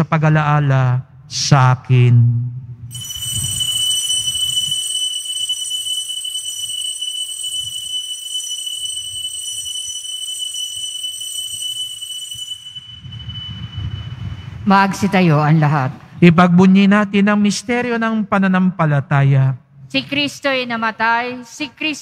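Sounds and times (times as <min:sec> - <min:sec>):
bell ringing: 0:02.9 - 0:14.7.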